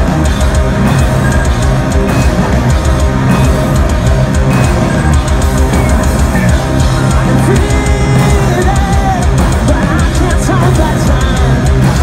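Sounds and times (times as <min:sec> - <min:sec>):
bass guitar: 0:00.0 - 0:12.0
distorted electric guitars: 0:00.0 - 0:12.0
drum kit pounding: 0:00.0 - 0:12.0.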